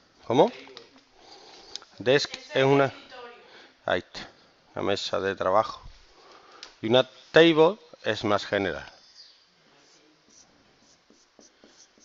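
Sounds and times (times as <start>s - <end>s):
marker squeaking on whiteboard: 9.0s - 12.0s.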